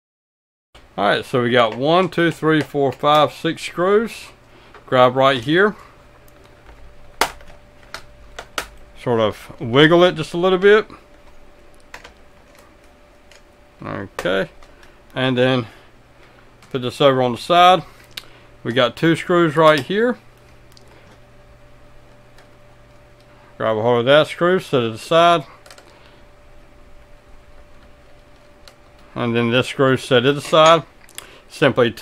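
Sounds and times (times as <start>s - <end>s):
faint hum: 0.8s - 32.0s
thin steady whine: 0.8s - 32.0s.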